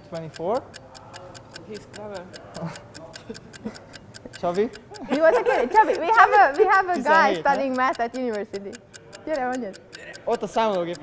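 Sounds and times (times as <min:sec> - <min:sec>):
clock ticking fast: 0:00.0 - 0:11.0.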